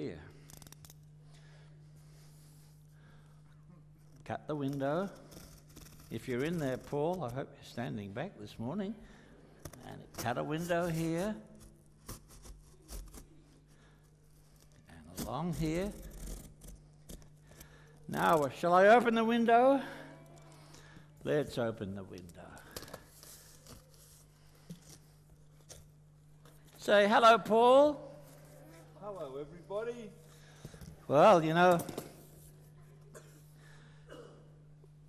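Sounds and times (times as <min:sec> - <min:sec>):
knife cutting cardboard: 0:10.1 - 0:13.4.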